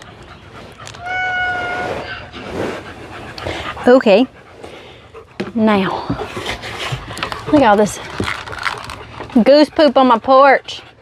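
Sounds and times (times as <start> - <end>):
dog whining: 0.0 - 3.8.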